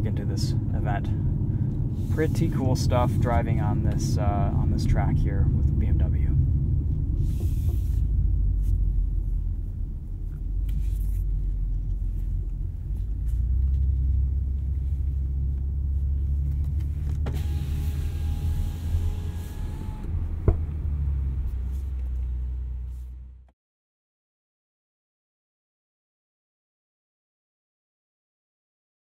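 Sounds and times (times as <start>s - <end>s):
car engine and road rumble: 0.0s - 23.5s.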